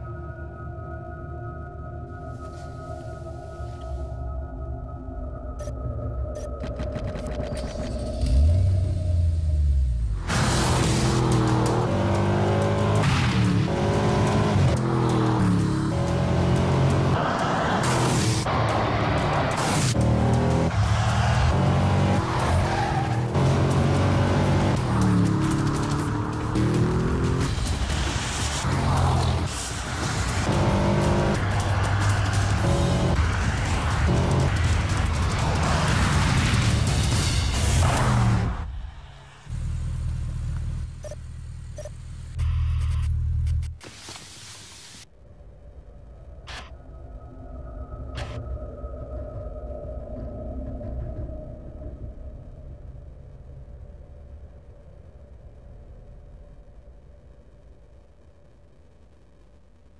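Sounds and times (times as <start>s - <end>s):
background music: 0.0s - 38.9s
car engine accelerating: 6.6s - 43.8s.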